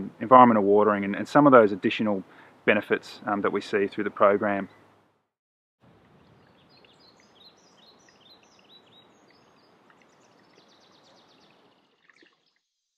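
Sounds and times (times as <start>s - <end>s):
quiet outdoor background noise: 0.0s - 12.9s
bird chirping: 6.1s - 12.0s.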